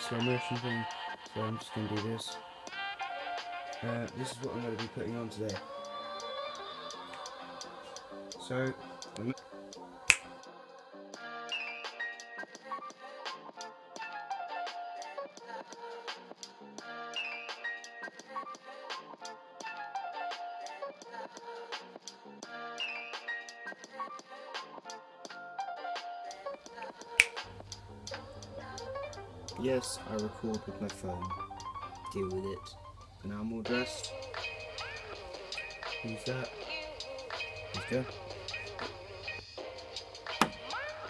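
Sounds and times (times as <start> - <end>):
background music: 0.0 - 41.0
finger snap: 7.0 - 7.4, 10.1 - 10.4, 26.8 - 28.2.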